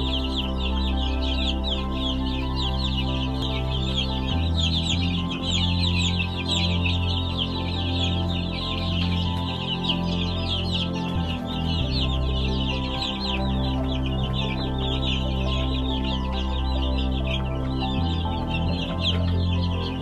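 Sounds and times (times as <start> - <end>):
baby chicks peeping: 0.0 - 20.0
low background music: 0.0 - 20.0.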